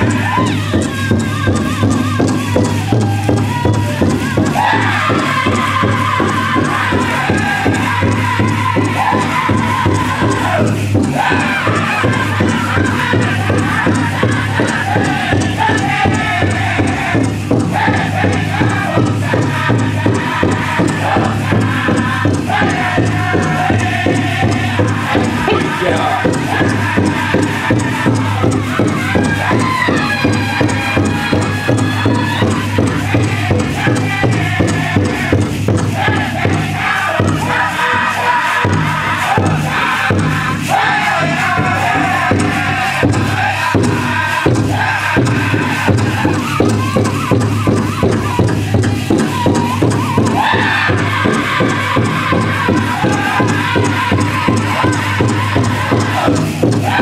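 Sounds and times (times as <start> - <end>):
big drum steady beat: 0.0 - 57.0
group singing: 0.0 - 57.0.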